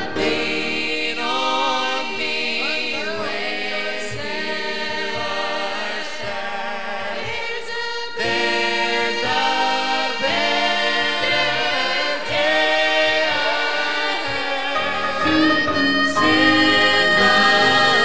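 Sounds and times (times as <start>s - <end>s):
choir singing gospel: 0.0s - 18.0s.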